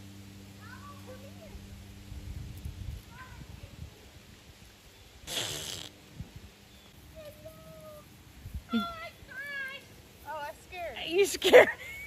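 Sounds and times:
alpaca snorting: 5.2s - 6.0s.

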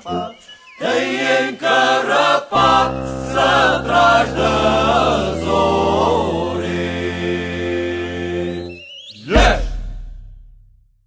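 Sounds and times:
group singing folk song: 0.0s - 9.8s.

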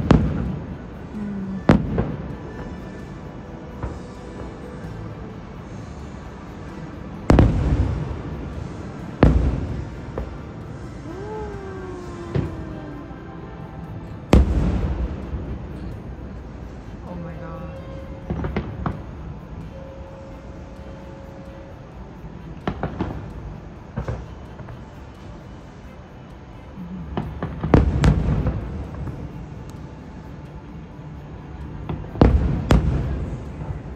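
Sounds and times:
fireworks booming: 0.0s - 2.7s, 7.2s - 10.4s, 14.3s - 15.9s, 27.2s - 29.2s, 31.9s - 33.8s
fireworks bangs: 7.3s - 10.4s, 32.2s - 33.4s.

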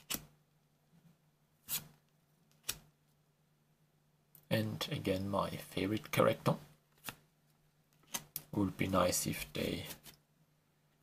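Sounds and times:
cards sliding against cards: 1.6s - 2.8s.

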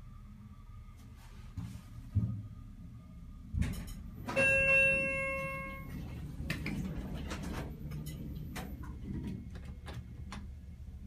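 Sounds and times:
elevator chime ding: 4.2s - 6.1s.

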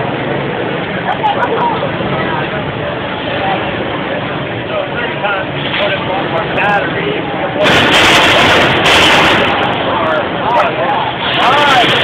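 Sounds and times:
crowd of voices chattering: 0.0s - 12.0s
robot smashing into computer: 7.6s - 9.8s.

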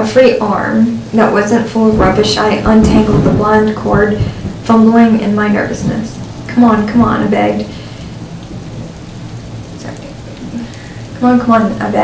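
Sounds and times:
steady rain falling: 0.0s - 12.0s
low rumble: 0.9s - 11.2s.

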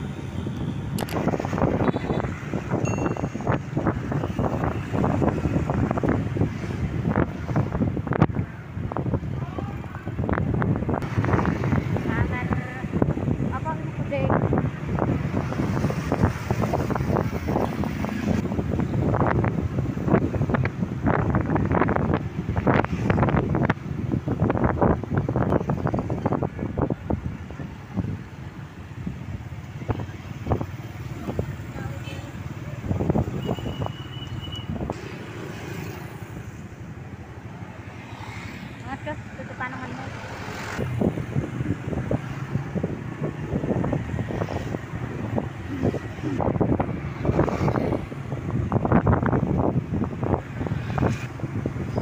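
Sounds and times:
wind buffeting microphone: 0.0s - 38.0s, 38.7s - 52.0s
motorcycle engine and road noise: 0.0s - 52.0s.

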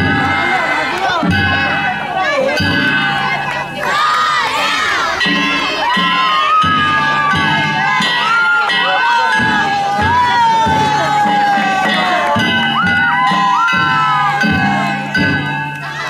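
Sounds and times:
crowd shouting and cheering: 0.0s - 16.0s
gongs ringing: 0.0s - 16.0s
taiko drum beats: 0.0s - 16.0s.

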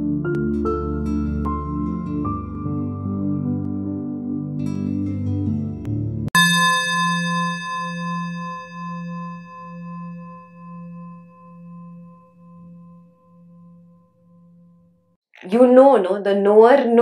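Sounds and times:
singing bowl ringing: 6.4s - 15.0s.

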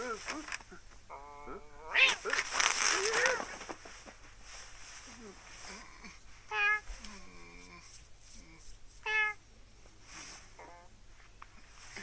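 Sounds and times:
cartoon cat meow: 1.8s - 3.4s.

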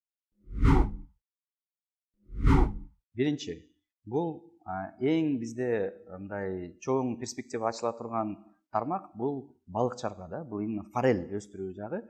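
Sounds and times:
whoosh with deep low thump: 0.5s - 1.1s, 2.3s - 2.9s.

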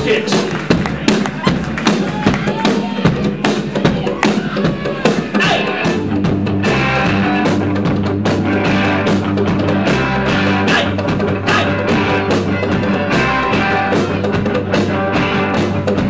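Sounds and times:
live rock band playing: 0.0s - 16.0s.

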